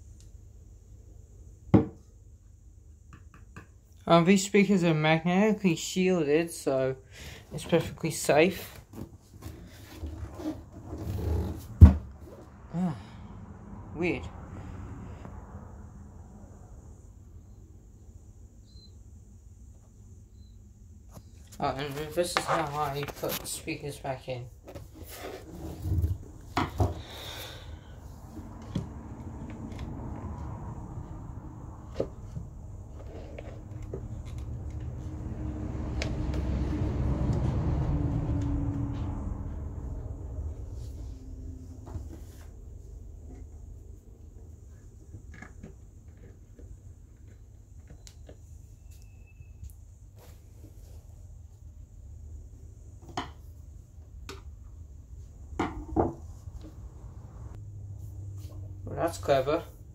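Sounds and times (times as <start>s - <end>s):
low rumble: 27.8s - 33.0s, 33.6s - 44.4s.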